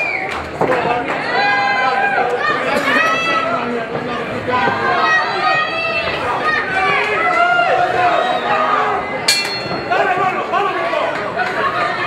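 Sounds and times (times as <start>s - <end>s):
spectators chattering and calling: 0.0s - 12.0s
boxing bell ringing: 9.3s - 10.2s.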